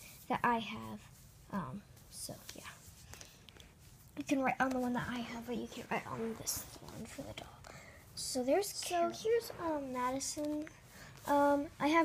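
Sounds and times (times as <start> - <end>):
soft hiss: 0.0 - 12.0
faint whispered speech: 4.2 - 12.0.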